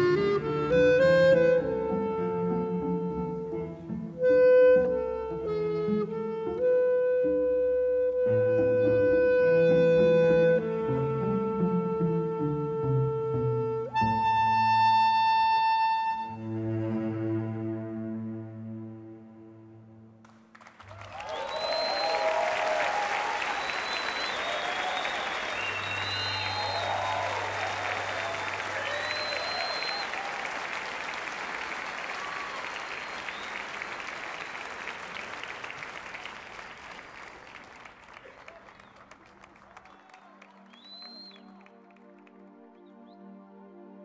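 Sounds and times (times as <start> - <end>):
audience applauding: 20.2 - 42.9
whistles and cheers: 20.9 - 36.9, 38.1 - 41.9
soft sustained music: 40.5 - 44.0.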